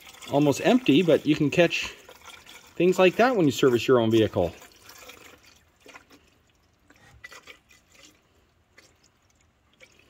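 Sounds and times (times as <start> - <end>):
fluid trickling into plastic reservoir: 0.0 - 10.0.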